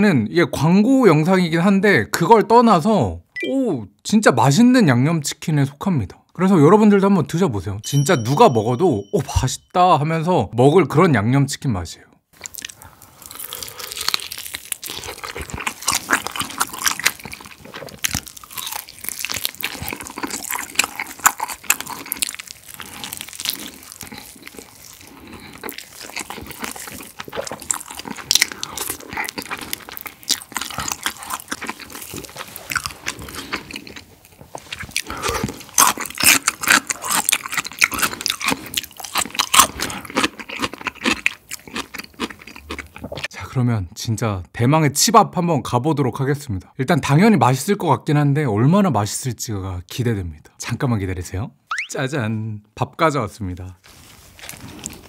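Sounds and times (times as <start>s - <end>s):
crunchy chewing of fried chicken: 12.4s - 43.3s, 53.8s - 55.0s.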